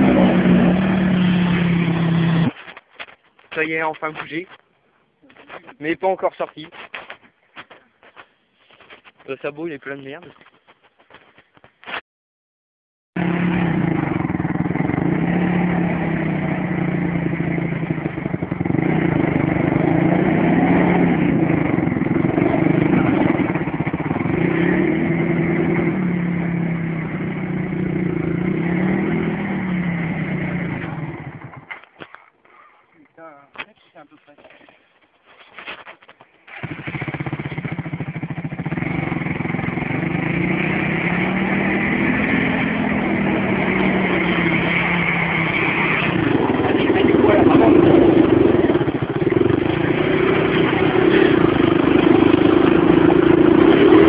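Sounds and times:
quad engine revving: 0.0 - 2.6, 13.2 - 31.7, 36.5 - 54.0.

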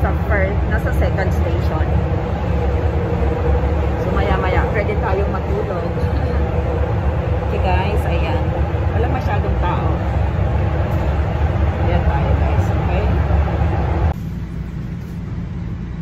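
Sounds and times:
subway car low rumble: 0.0 - 16.0.

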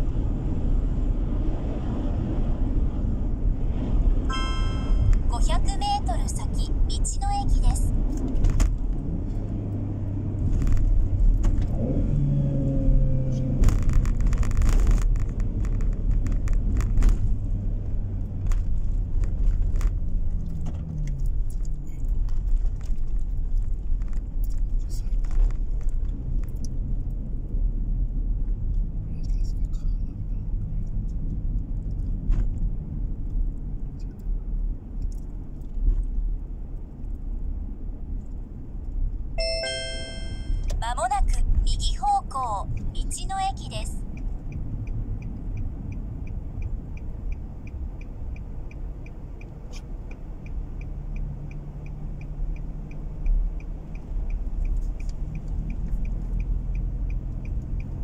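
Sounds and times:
car engine and road rumble: 0.0 - 58.0.

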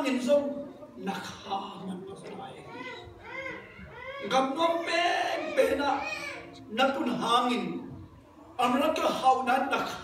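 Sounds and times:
man speaking: 4.2 - 7.9.

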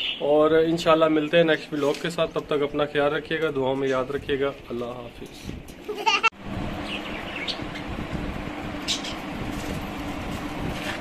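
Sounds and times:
low mechanical hum: 0.5 - 11.0
high bird chirps: 6.8 - 7.9.

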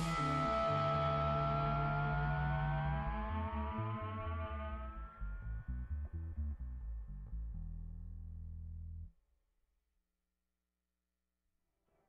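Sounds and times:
rising held tones: 0.0 - 6.2
bass line: 0.0 - 9.1.

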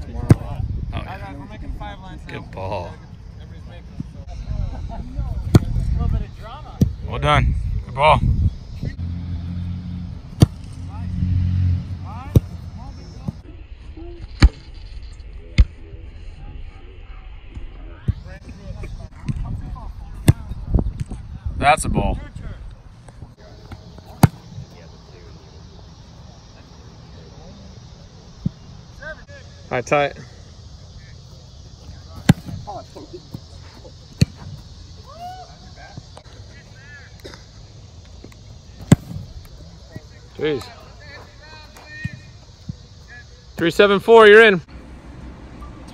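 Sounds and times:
football kick thumps: 0.2 - 0.6, 5.4 - 5.9, 20.2 - 21.2, 23.7 - 24.6, 32.1 - 34.7, 38.8 - 39.3
faint distant voices: 15.2 - 44.6.

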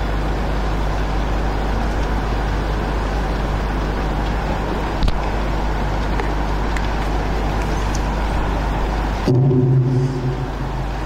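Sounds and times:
loud noise with low hum: 0.0 - 11.0.

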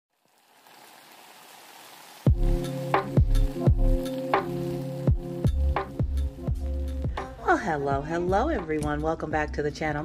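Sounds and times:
faint steady hiss: 0.1 - 7.9.

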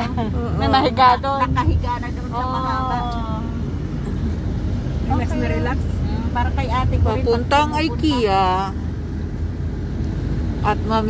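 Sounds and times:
voices: 0.0 - 8.8
road and engine rumble: 0.0 - 11.0.

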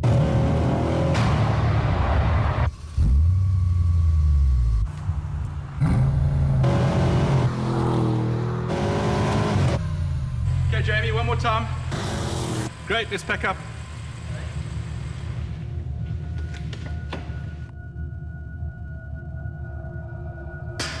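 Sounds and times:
car engine revving: 0.0 - 15.6
deep low engine rumble: 9.7 - 12.0.

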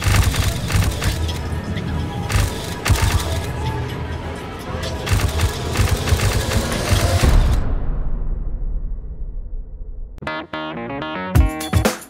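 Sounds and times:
rapid clicks: 0.0 - 1.5, 5.0 - 7.6
deep rumble: 5.4 - 10.2.

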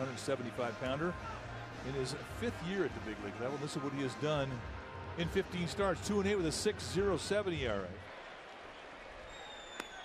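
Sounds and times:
faint high whistle: 9.3 - 10.0.

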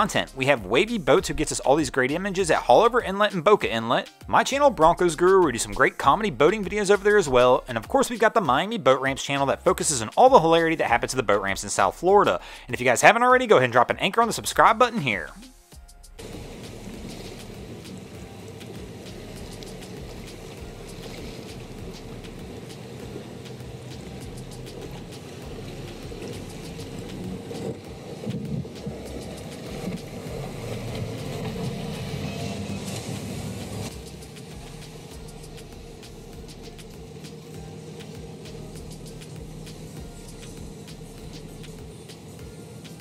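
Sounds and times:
boat outboard engines: 16.2 - 43.0
hiss of wind and water: 16.2 - 43.0.

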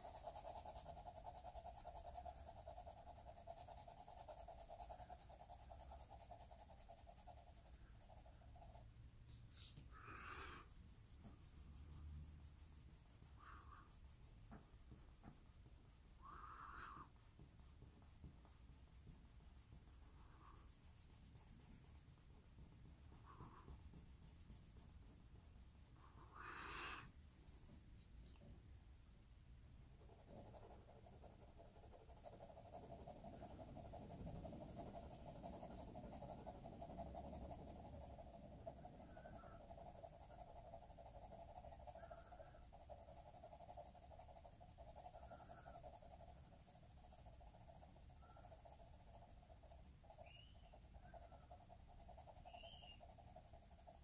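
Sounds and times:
pencil scratching on paper: 0.0 - 8.9, 9.5 - 28.4, 30.0 - 54.0
faint steady hum: 0.0 - 54.0.

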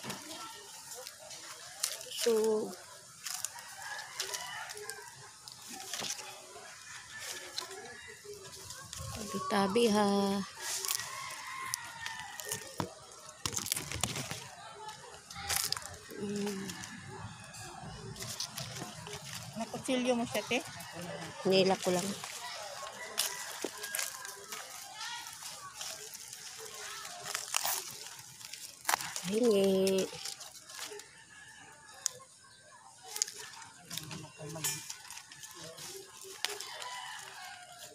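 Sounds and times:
roots tearing from bark: 0.0 - 9.5, 10.5 - 16.9, 18.1 - 19.6, 21.7 - 31.1, 33.0 - 37.9.

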